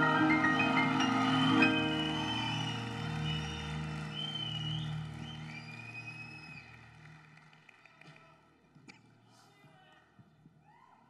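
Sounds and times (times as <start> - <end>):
audience clapping: 0.0 - 9.0.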